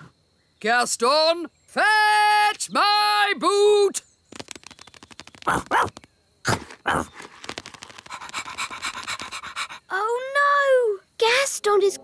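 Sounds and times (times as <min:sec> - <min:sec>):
cartoon character panting: 0:07.9 - 0:10.0.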